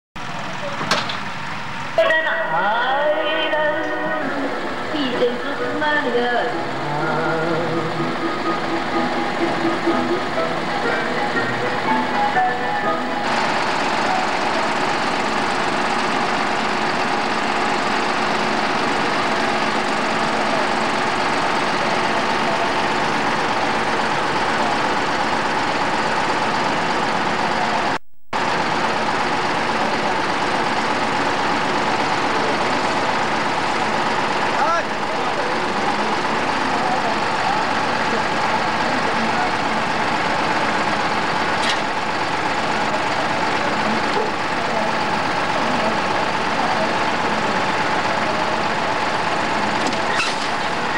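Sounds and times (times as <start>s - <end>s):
diesel truck engine running: 0.2s - 50.9s
voices: 2.0s - 13.1s, 29.4s - 50.9s
music: 6.4s - 13.2s.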